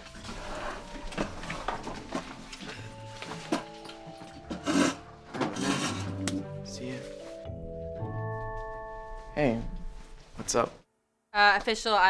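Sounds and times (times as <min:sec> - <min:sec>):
soft background music: 0:00.0 - 0:10.8.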